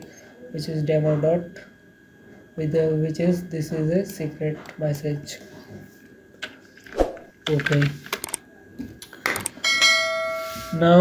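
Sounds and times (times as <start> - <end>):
electronic bell chime: 9.6 - 11.0.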